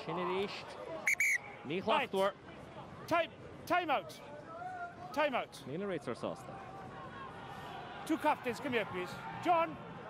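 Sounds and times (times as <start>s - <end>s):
referee's whistle blast: 1.1s - 1.6s.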